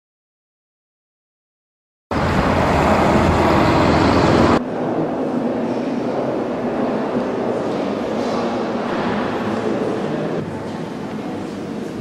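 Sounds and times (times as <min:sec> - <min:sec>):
road traffic rumble and hiss: 0:02.1 - 0:06.8.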